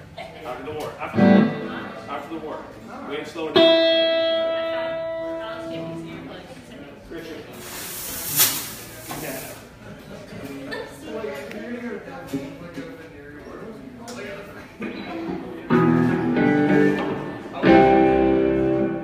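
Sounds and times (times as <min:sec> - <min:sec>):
electric guitar note ringing: 0:01.1 - 0:02.4, 0:03.5 - 0:06.4, 0:15.7 - 0:19.0
brief hiss: 0:07.6 - 0:09.7.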